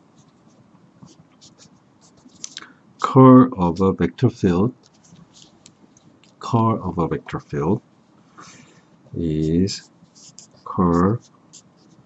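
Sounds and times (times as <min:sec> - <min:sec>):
marker writing on paper: 0:00.2 - 0:02.6, 0:09.1 - 0:12.0.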